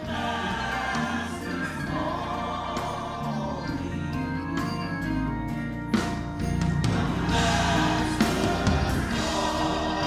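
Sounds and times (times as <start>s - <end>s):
church choir singing gospel: 0.0s - 10.0s
instrumental accompaniment: 0.0s - 10.0s.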